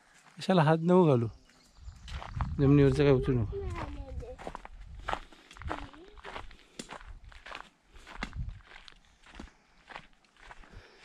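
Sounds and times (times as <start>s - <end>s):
footsteps on dirt path: 0.0s - 0.7s, 1.3s - 11.0s.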